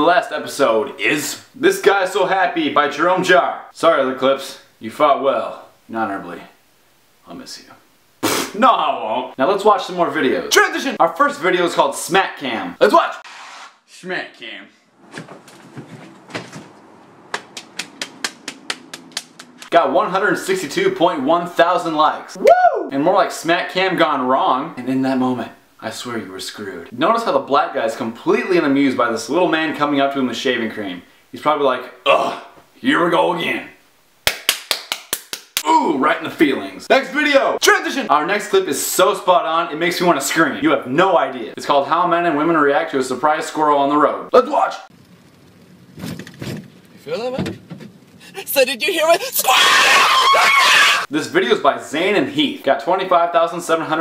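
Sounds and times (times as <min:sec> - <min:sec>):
man speaking: 0:00.0 - 0:06.6, 0:08.4 - 0:13.2, 0:13.9 - 0:14.8, 0:35.6 - 0:44.9, 0:47.1 - 0:47.5, 0:48.2 - 0:49.7
car road and engine noise: 0:45.0 - 0:47.0.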